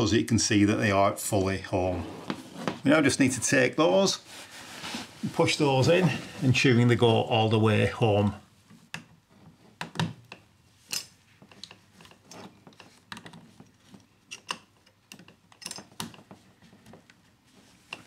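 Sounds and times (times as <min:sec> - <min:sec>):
small clicks and knocks of tubing: 0:08.7 - 0:18.0.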